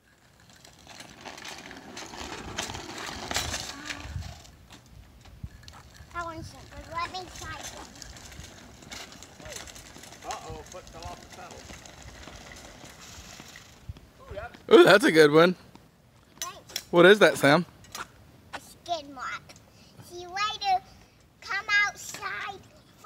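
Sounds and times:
training wheels rattling: 0.0s - 13.9s
bicycle rolling over asphalt: 0.0s - 15.3s.

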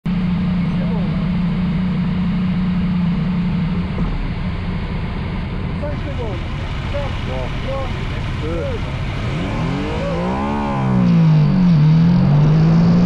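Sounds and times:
motorcycle engine idling: 0.1s - 11.6s.

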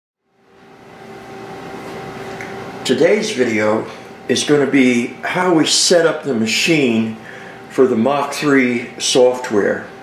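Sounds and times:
background hum and hiss: 0.2s - 10.0s.

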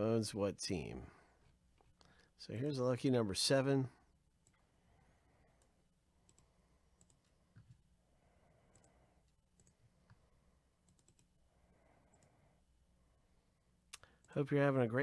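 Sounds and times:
low room hum: 0.0s - 15.0s
computer mouse and keyboard clicks: 5.6s - 7.8s, 10.8s - 11.3s.

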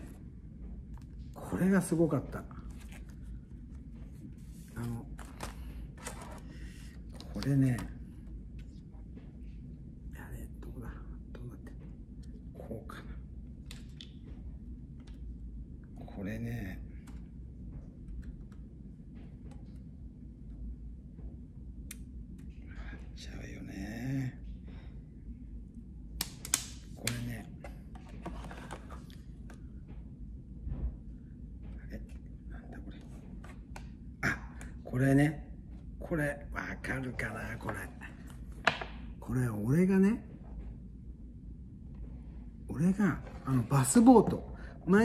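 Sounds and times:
low steady hum: 0.0s - 45.0s
man whispering: 10.1s - 13.4s, 31.7s - 33.2s, 36.0s - 38.4s.

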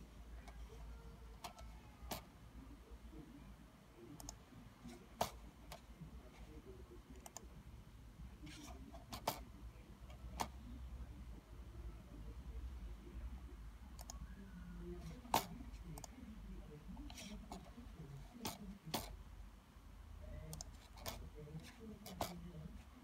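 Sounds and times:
low steady hum: 0.0s - 23.0s
computer mouse clicks: 4.2s - 4.4s, 7.1s - 7.5s, 14.0s - 14.2s, 15.3s - 16.2s, 20.5s - 21.2s.

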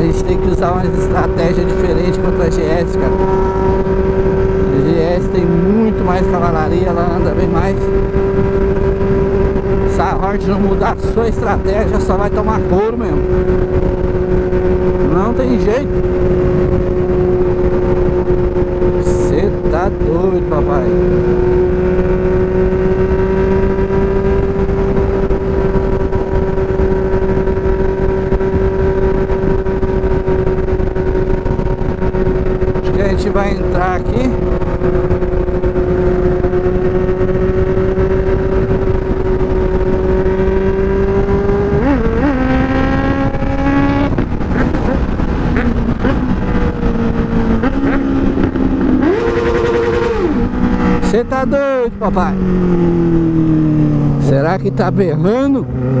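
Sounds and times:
motorcycle engine at high revs: 0.0s - 56.0s
wind noise on microphone: 0.0s - 56.0s.

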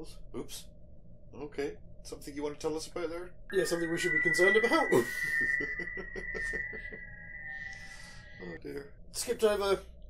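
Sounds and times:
steady high-pitched tone: 3.5s - 8.5s.

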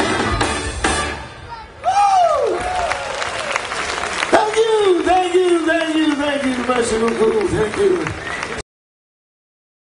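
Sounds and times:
audience applauding and cheering: 1.8s - 8.6s.

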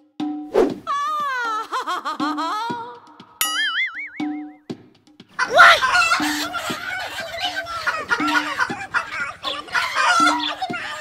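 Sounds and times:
chicken squawking and clucking: 5.4s - 11.0s.

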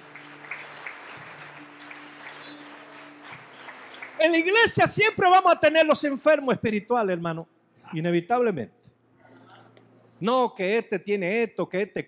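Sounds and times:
congregation applauding: 0.0s - 6.1s.

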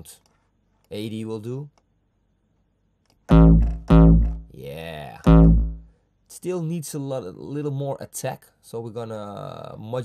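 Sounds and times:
distorted kick drum booms: 3.3s - 4.5s, 5.2s - 5.9s.

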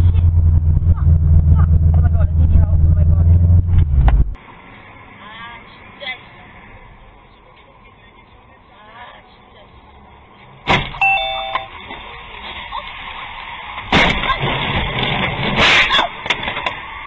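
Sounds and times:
road noise inside car: 0.0s - 17.0s
short electronic beep: 11.0s - 11.8s.

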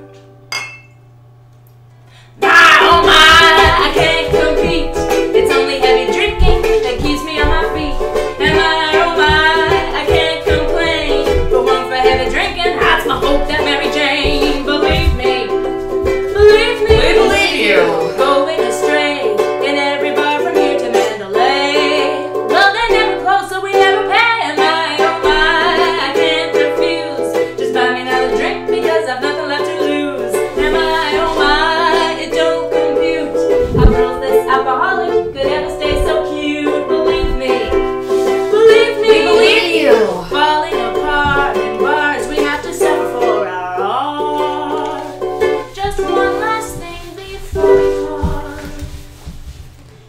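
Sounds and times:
woman singing: 2.4s - 49.3s
ukulele strumming: 2.4s - 49.6s
low thump: 33.5s - 34.3s.

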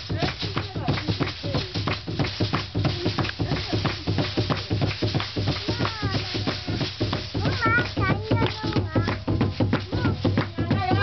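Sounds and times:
ankle rattles shaking: 0.0s - 11.0s
drum beaten in a steady pulse: 0.0s - 11.0s.

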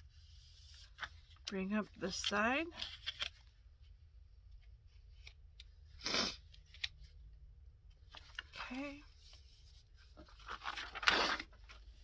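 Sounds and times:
paper rustling and folding: 0.1s - 3.6s, 8.0s - 12.0s
sniff through stuffed nose: 6.0s - 6.4s.

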